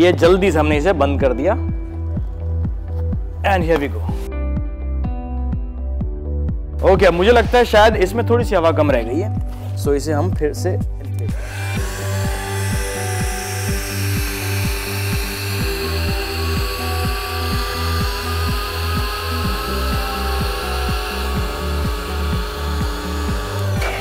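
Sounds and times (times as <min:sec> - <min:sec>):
background music with low beat: 0:00.0 - 0:24.0
electric air pump running: 0:11.2 - 0:24.0.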